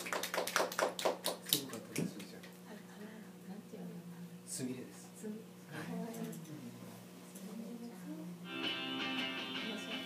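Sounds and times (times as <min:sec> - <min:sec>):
hand claps: 0:00.0 - 0:02.6.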